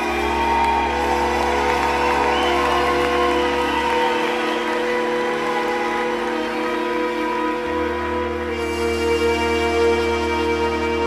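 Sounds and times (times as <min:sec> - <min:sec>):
modular synthesizer chords: 0:00.0 - 0:11.0
orchestral music: 0:00.0 - 0:11.0.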